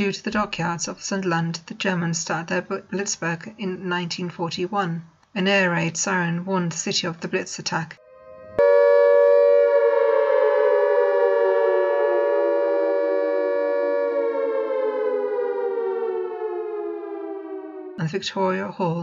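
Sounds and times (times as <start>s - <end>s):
air raid siren winding down: 8.0s - 18.2s.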